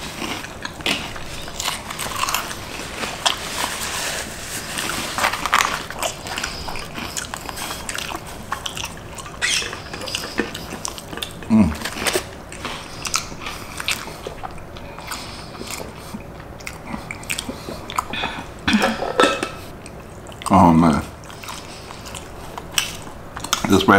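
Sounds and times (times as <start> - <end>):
chewing and lip smacking: 0.0 - 3.8, 4.6 - 23.9.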